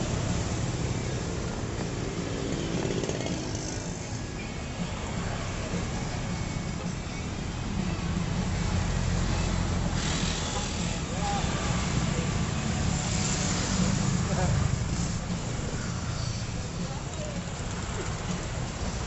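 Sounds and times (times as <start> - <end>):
motorcycles passing: 0.0 - 19.0.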